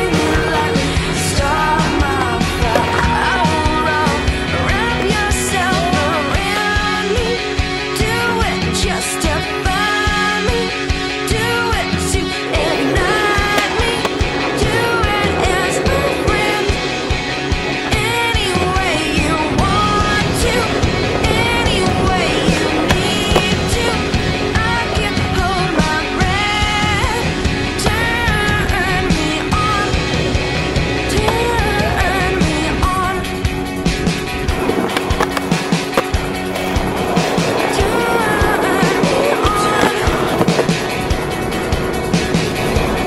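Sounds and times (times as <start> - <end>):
rock song with singing: 0.0 - 43.0
skateboard clacks: 0.0 - 43.0
skateboard rolling on concrete: 0.0 - 43.0.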